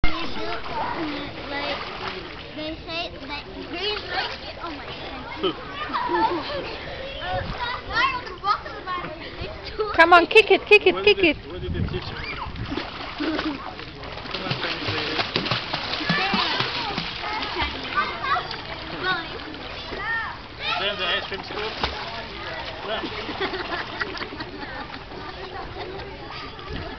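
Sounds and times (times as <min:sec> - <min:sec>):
water splashing in a pool: 0:00.0 - 0:06.9, 0:11.3 - 0:26.9
children's voices: 0:00.0 - 0:10.0, 0:15.9 - 0:21.0, 0:24.4 - 0:26.9.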